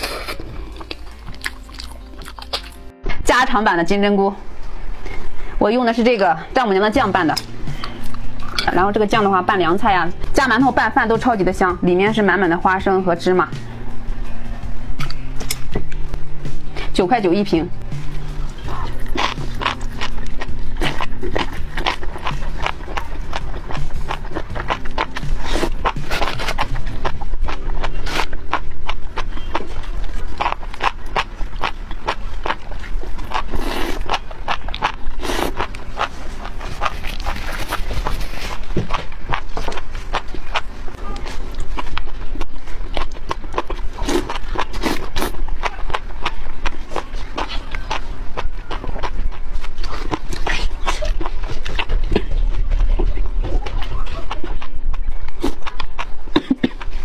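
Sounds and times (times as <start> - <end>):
wet slurping and chewing: 0.0 - 2.9, 18.2 - 57.0
background music: 0.0 - 57.0.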